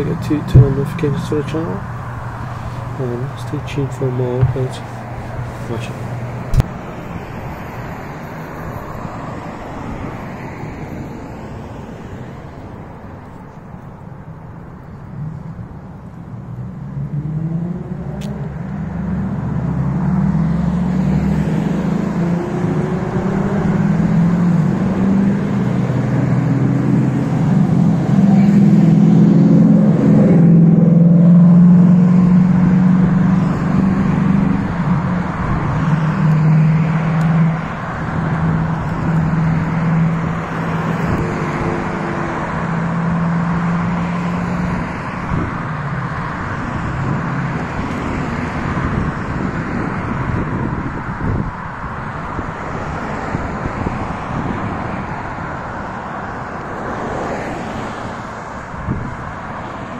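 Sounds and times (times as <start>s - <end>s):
car engines passing: 0.0s - 59.9s.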